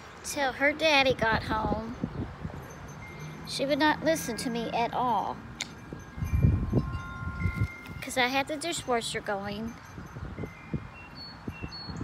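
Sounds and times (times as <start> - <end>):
wind chimes ringing: 1.8 - 12.0.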